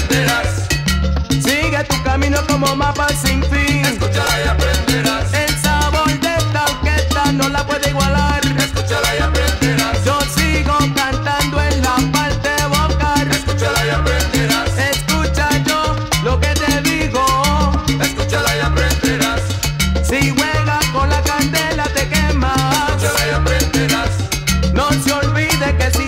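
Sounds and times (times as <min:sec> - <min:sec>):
instrumental salsa music: 0:00.0 - 0:26.0.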